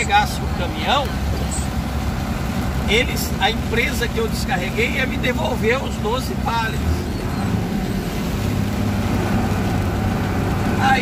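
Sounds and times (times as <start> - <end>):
diesel engine running: 0.0 - 11.0
heavy rain hiss: 0.0 - 11.0
tyres on wet road: 0.0 - 11.0.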